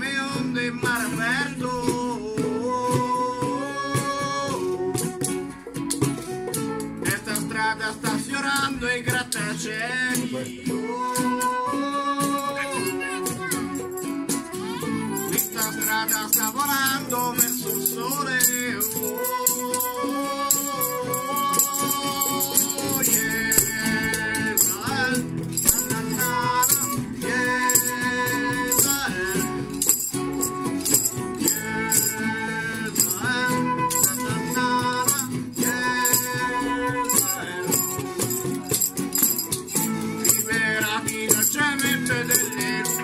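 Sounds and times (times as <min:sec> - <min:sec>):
strummed acoustic guitars: 0:00.0 - 0:43.0
flute melody: 0:02.4 - 0:07.8, 0:11.6 - 0:43.0
shaker beat: 0:12.7 - 0:43.0.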